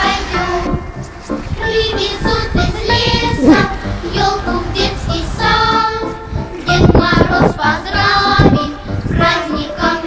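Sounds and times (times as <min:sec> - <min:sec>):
music: 0:00.0 - 0:10.0
child singing: 0:01.6 - 0:10.0.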